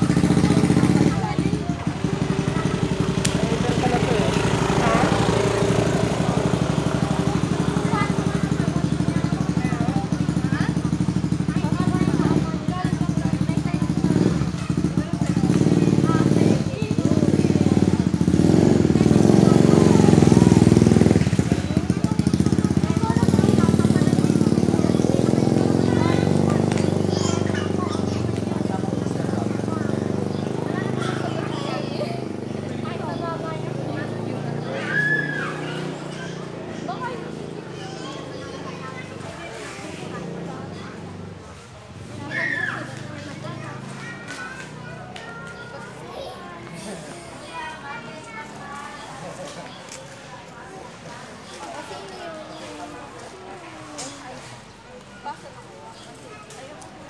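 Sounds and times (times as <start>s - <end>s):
motorcycle engine idling: 0.0s - 34.7s
people talking: 0.0s - 57.0s.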